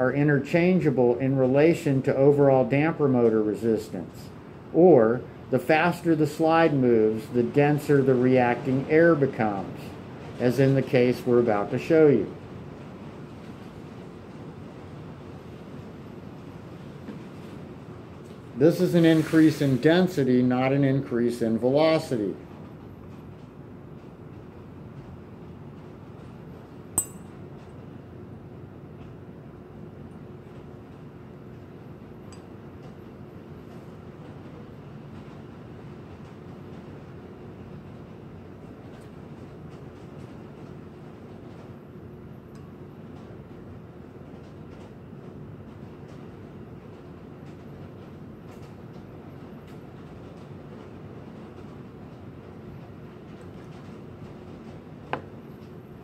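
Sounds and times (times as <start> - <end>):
metal clinking on glass: 27.0 - 27.4.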